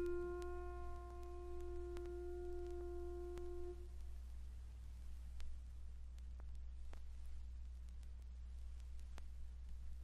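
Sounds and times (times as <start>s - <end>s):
sustained piano note: 0.0s - 3.8s
low steady hum: 0.0s - 10.0s
vinyl record crackle: 0.0s - 10.0s.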